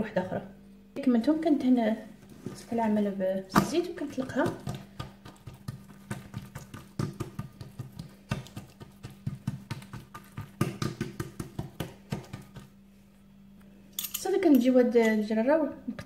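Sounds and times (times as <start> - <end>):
low steady hum: 0.0 - 16.0
hands slapping dough: 3.5 - 12.8.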